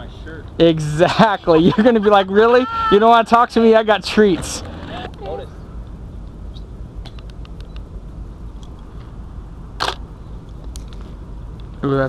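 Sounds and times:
camera shutter click: 9.8s - 10.0s.

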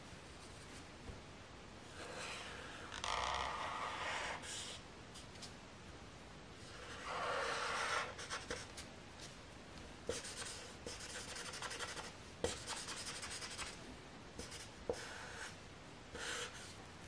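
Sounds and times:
marker scratching on paper: 2.0s - 4.8s, 6.7s - 8.7s, 10.1s - 13.8s, 14.4s - 16.7s.

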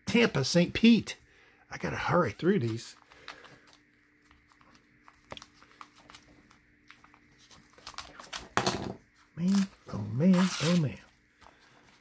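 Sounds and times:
paper envelope rustling: 2.6s - 8.6s
paper ripping: 9.4s - 11.0s.

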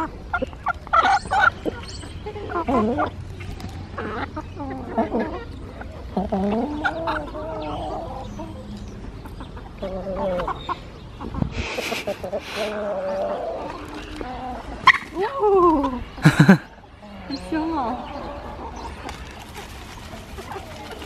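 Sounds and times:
chickens clucking: 0.0s - 21.0s
rustling: 19.0s - 21.0s.

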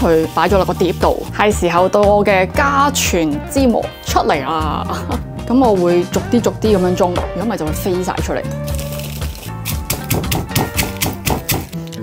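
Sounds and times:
background music: 0.0s - 12.0s
pestle pounding in stone mortar: 9.6s - 11.8s.

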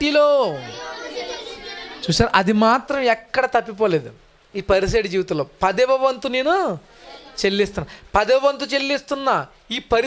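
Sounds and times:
man preaching into a microphone: 0.0s - 0.7s, 2.0s - 6.8s, 7.4s - 10.0s.

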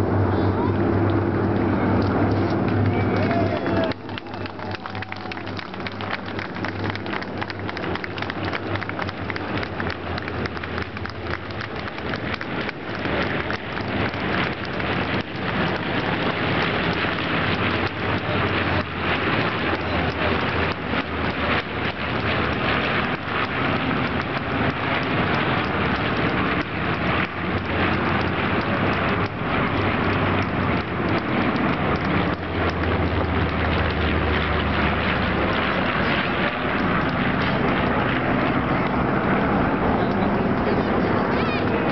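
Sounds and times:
propeller aircraft engines droning: 0.0s - 41.9s.

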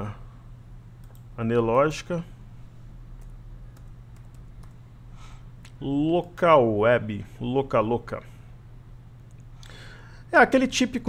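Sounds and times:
steady low hum: 0.0s - 11.0s
keystrokes on computer keyboard: 1.0s - 1.3s, 3.2s - 4.8s.

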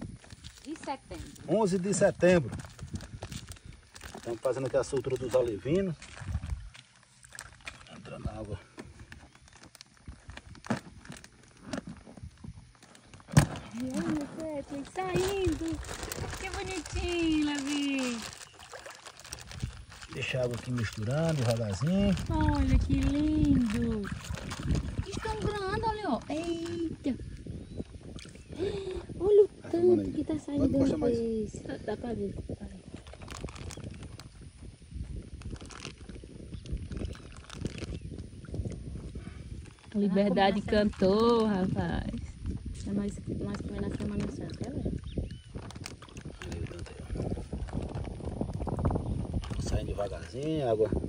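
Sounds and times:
water sloshing and splashing: 0.0s - 31.0s, 32.8s - 34.3s, 35.4s - 50.4s.

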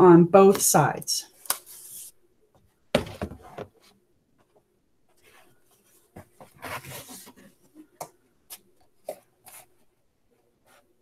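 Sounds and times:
material rustling: 2.9s - 10.0s.

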